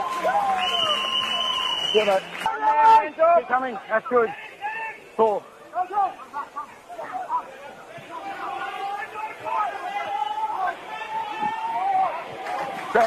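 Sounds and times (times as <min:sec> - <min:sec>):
voices shouting and calling: 0:00.0 - 0:13.0
long held yells: 0:08.2 - 0:12.4.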